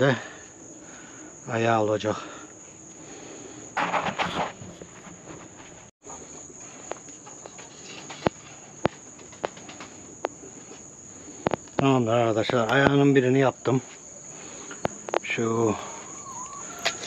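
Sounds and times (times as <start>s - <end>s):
crickets chirring: 0.0s - 17.0s
scraping rustle: 3.8s - 11.6s.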